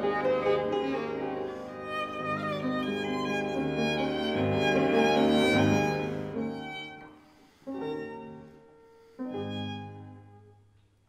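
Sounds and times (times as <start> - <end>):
classical chamber music: 0.0 - 11.0.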